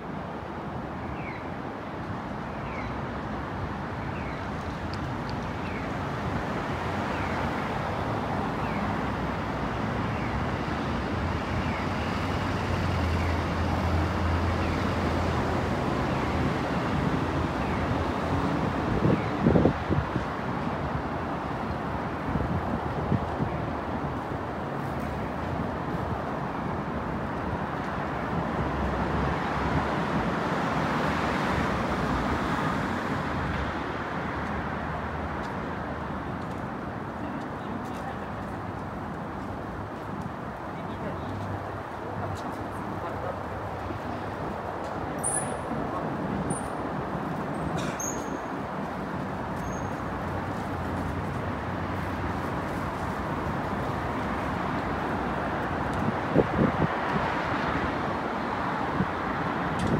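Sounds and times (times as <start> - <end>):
road traffic: 0.0 - 59.9.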